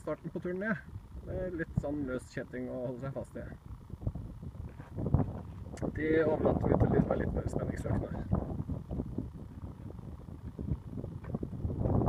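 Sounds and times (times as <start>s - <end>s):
wind buffeting microphone: 0.7s - 12.0s.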